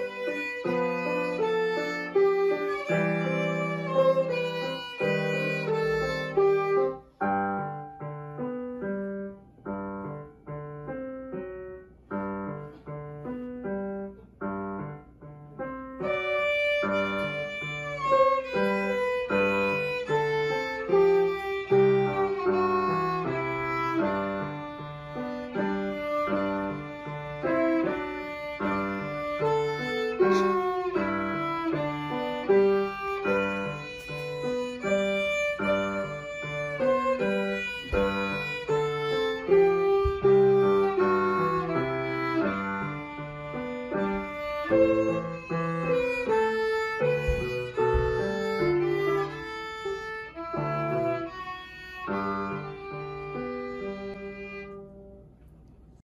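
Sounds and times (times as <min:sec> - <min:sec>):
violin sustained notes: 0:00.0 - 0:07.0, 0:16.0 - 0:54.8
piano notes and chords: 0:00.0 - 0:56.0.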